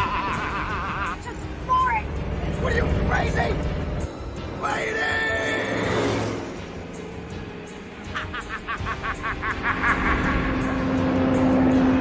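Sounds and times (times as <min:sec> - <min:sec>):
action music: 0:00.0 - 0:12.0
tyres on dirt road: 0:00.0 - 0:12.0.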